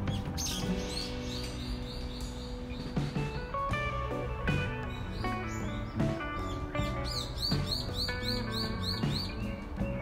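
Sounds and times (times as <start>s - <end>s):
bird chirping quickly: 0.0s - 3.4s, 4.8s - 9.7s
sustained instrumental music: 0.0s - 10.0s.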